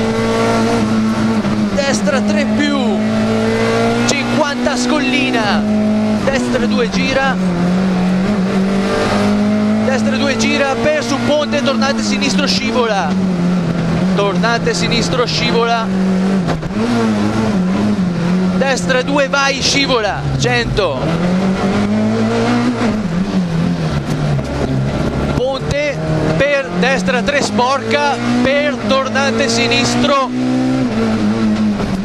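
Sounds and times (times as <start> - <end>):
car engine pulling: 0.0 - 32.0
road and tyre noise: 0.0 - 32.0.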